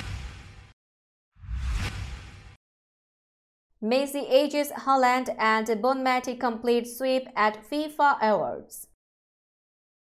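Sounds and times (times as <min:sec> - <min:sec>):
whoosh: 0:00.0 - 0:00.8, 0:01.4 - 0:02.6.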